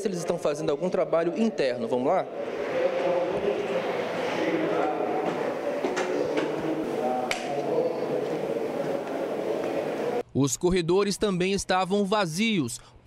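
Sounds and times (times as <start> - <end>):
faint indistinct voices: 0.0 - 10.2
room noise: 0.6 - 10.2
footsteps on stairs: 5.0 - 10.2.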